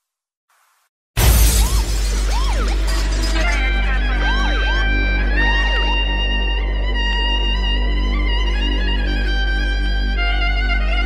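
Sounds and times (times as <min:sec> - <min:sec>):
loud crash: 0:01.2 - 0:04.1.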